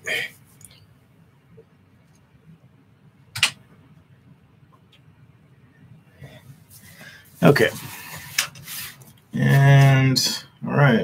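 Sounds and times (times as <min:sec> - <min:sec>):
soft rustling: 0:06.3 - 0:10.0.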